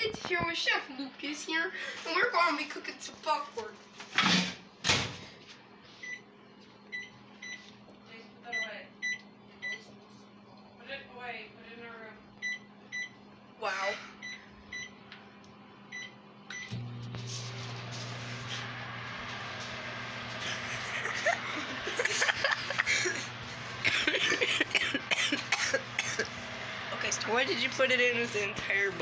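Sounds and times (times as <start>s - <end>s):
microwave running hum and fan: 0.0s - 29.0s
microwave keypad beeps: 6.0s - 6.3s, 6.9s - 7.7s, 8.5s - 9.8s, 12.4s - 13.2s, 14.2s - 15.0s, 15.9s - 16.7s.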